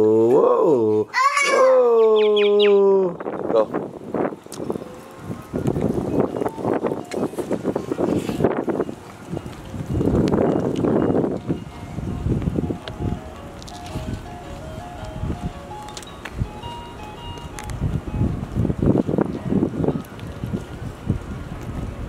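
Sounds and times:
wind buffeting microphone: 1.5s - 22.0s.

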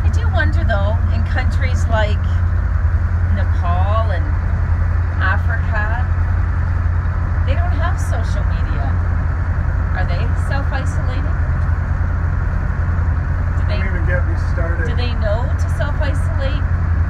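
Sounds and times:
motorboat engines droning: 0.0s - 17.0s.

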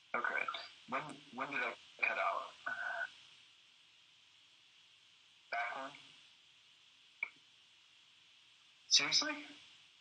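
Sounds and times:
person speaking over video call: 0.0s - 3.3s, 5.5s - 6.2s, 8.8s - 9.8s
faint steady hiss: 0.0s - 10.0s.

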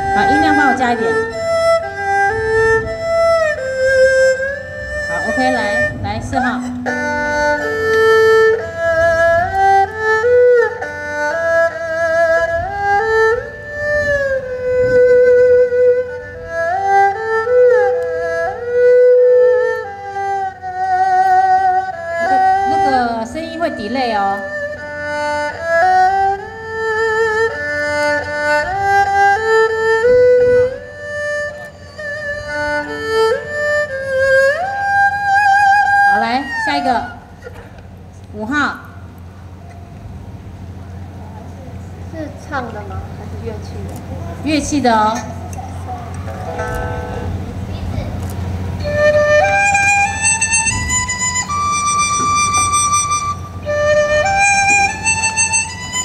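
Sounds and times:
amplified erhu melody: 0.0s - 56.0s.

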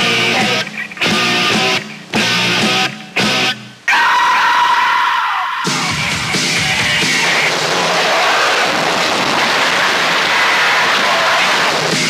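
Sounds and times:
rock band playing: 0.0s - 3.8s, 5.6s - 12.0s
distorted electric guitar chords: 0.0s - 3.9s, 5.6s - 12.0s.

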